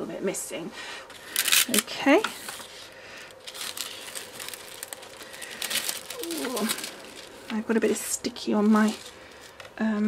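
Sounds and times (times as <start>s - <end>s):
metallic foil crinkling: 1.2s - 10.0s
small foil crackles: 1.2s - 10.0s.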